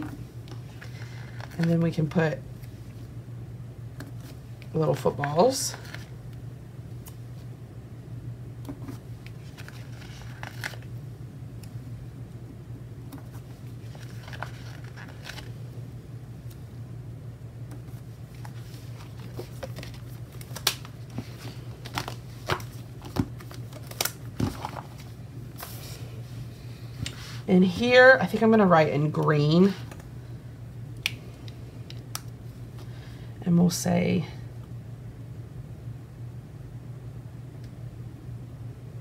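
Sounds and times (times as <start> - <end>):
steady low hum: 0.0 - 39.0
paper rustling: 8.8 - 10.9, 13.2 - 15.6, 17.9 - 26.0.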